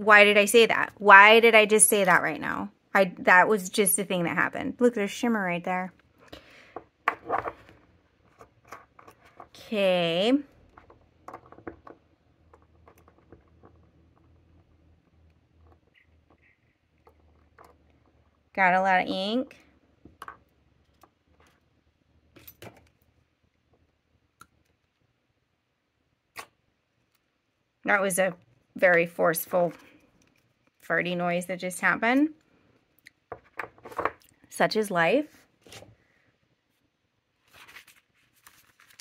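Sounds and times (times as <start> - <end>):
small objects clicking on desk: 10.6 - 14.6.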